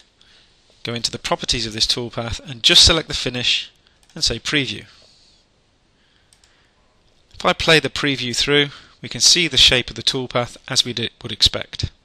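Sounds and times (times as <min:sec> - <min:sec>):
computer mouse click: 0:06.3 - 0:06.6.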